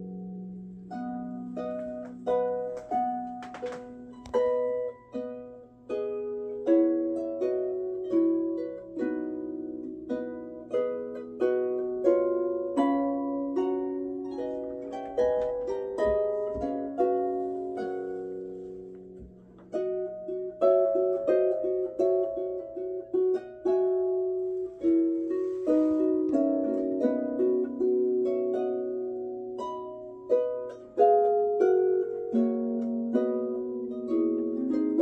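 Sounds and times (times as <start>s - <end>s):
harp played solo: 0.0s - 35.0s.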